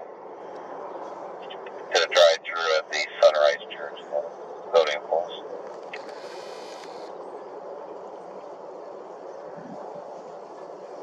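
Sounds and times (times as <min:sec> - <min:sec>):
low background rumble: 0:00.0 - 0:11.0
person's voice: 0:01.5 - 0:05.4.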